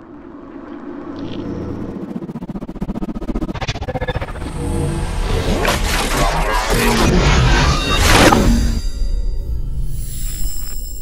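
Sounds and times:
low rumble with fast flutter: 0.0s - 7.5s.

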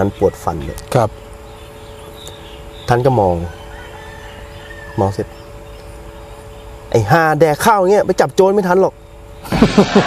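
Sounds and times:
faint rooster crowing: 3.2s - 5.5s.

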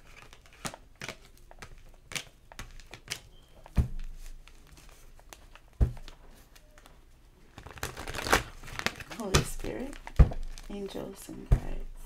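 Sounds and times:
cards rustling and clicking: 0.0s - 11.8s.

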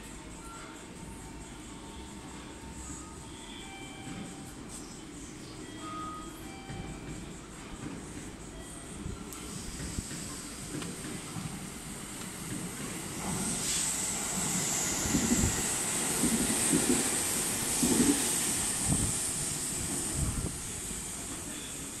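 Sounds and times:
electric train passing: 0.1s - 22.0s
high hiss of train: 0.2s - 22.0s.

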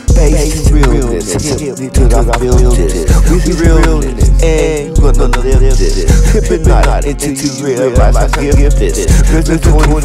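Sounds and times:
hip hop beat with heavy bass: 0.0s - 10.0s
person rapping: 0.0s - 10.0s.

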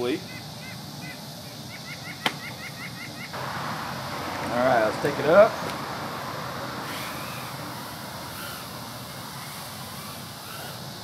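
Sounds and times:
bird chirping rapidly: 0.0s - 3.4s, 6.4s - 10.9s.

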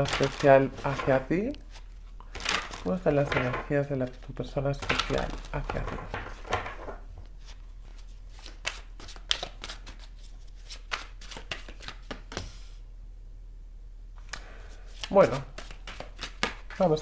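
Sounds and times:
cards being shuffled: 0.0s - 12.8s, 14.7s - 17.0s.

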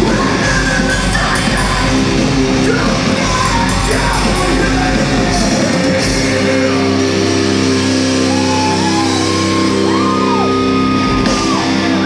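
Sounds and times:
distorted guitar chord ringing: 0.0s - 12.0s.

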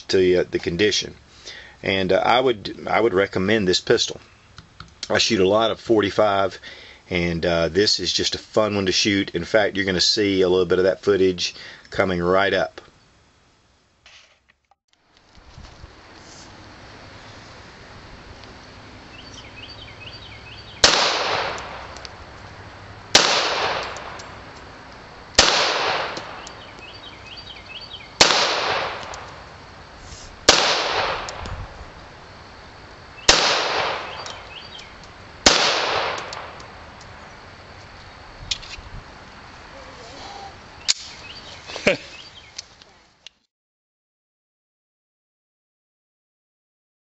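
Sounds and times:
pistol shots with echo: 20.8s - 22.0s, 23.1s - 24.2s, 25.4s - 26.5s, 28.2s - 29.4s, 30.5s - 31.4s, 33.3s - 34.4s, 35.4s - 36.6s.

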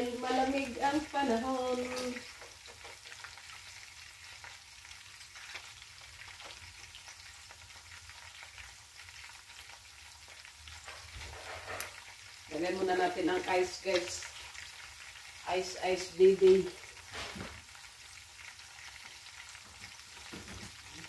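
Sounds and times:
food sizzling in oil: 0.0s - 21.0s.

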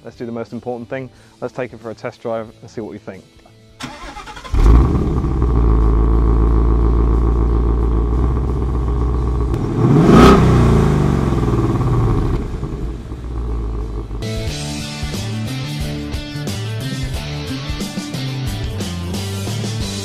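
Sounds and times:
car engine idling and revving: 3.8s - 14.6s.

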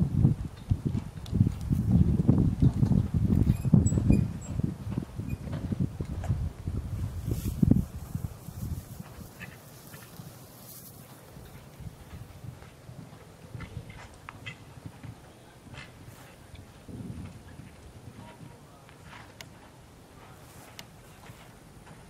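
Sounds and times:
horse hooves cantering on sand: 0.5s - 22.0s.

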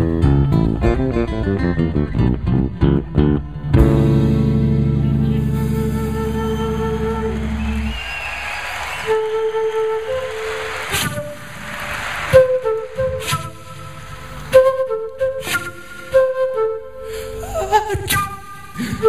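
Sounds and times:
electric bass note: 0.0s - 7.9s
solo flute melody: 5.4s - 19.0s.

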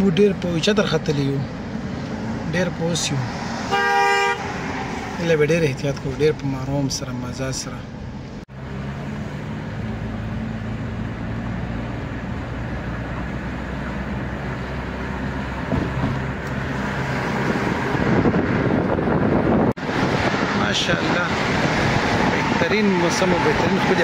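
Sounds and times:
car engine hum: 0.0s - 24.0s
tyre and road noise: 0.0s - 24.0s.

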